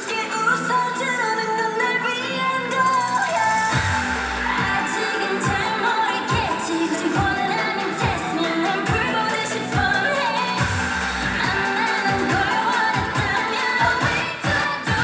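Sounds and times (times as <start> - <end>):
pop song with woman singing: 0.0 - 15.0.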